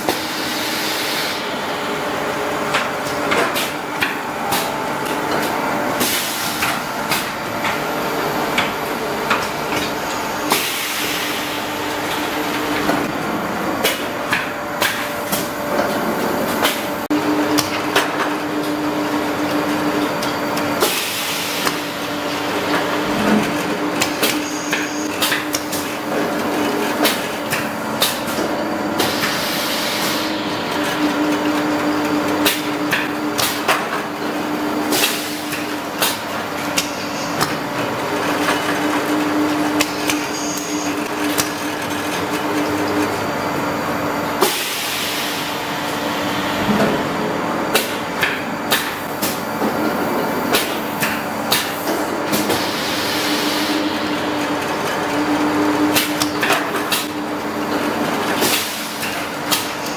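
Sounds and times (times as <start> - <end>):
machine motor hum: 1.3 - 59.9.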